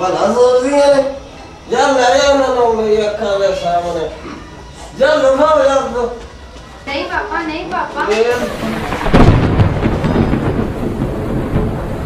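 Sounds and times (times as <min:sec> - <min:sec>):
loud rumble of thunder: 0:08.3 - 0:12.0.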